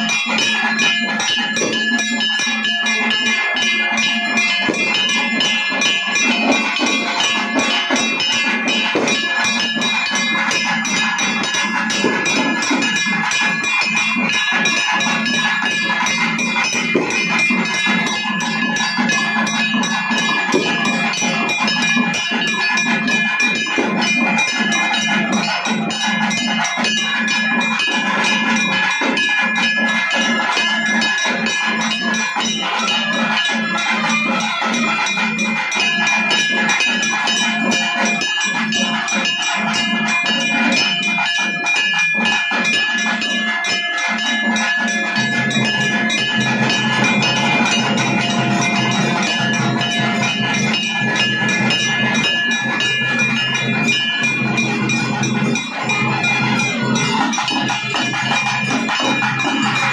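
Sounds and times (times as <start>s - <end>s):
drum band fast rhythm: 0.0s - 59.9s
metallic bell-like ringing: 0.0s - 59.9s.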